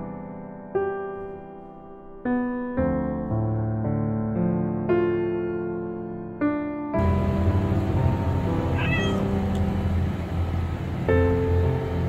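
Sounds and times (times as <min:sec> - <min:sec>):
steady low hum: 0:07.0 - 0:12.0
kitten meowing: 0:08.7 - 0:09.4.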